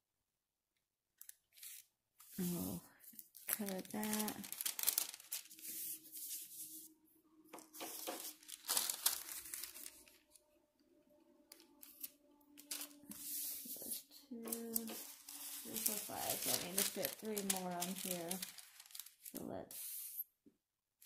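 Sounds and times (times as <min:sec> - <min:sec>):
parchment paper rustling: 0:01.2 - 0:06.9, 0:07.5 - 0:10.4, 0:11.5 - 0:20.2.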